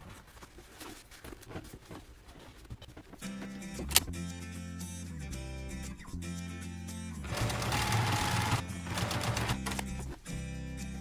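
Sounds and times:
background music: 3.1s - 11.0s
sewing machine stitching: 7.3s - 9.8s.

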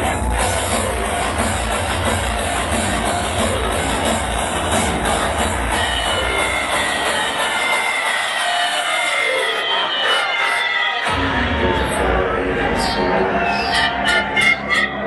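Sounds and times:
hardcore techno through sound system: 0.0s - 15.0s.

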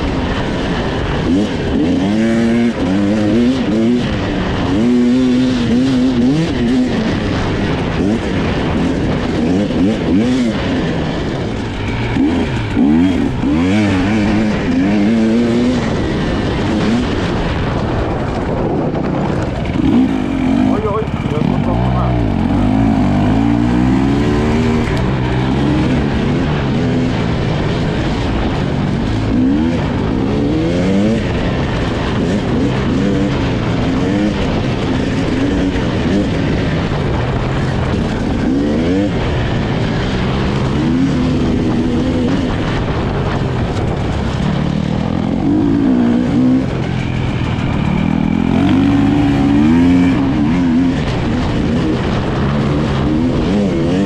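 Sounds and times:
motorcycle engine revving: 0.0s - 54.0s.

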